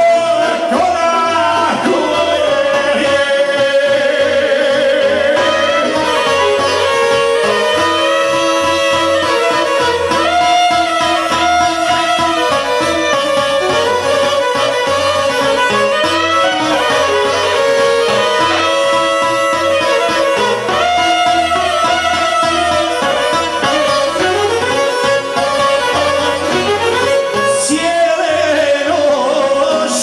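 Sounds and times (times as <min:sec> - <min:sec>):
violin lead: 0:00.0 - 0:30.0
plucked strings: 0:00.8 - 0:30.0.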